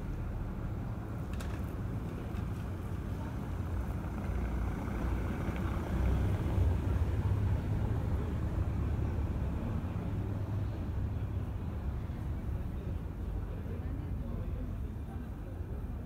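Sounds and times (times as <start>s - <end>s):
low steady street rumble: 0.0s - 16.0s.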